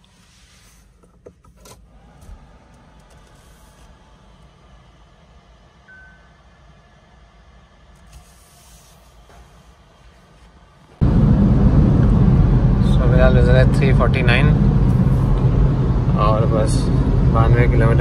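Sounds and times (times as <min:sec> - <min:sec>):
short thin beep: 0:05.9 - 0:06.4
car cabin hum: 0:07.8 - 0:18.0
road and engine noise: 0:10.0 - 0:18.0.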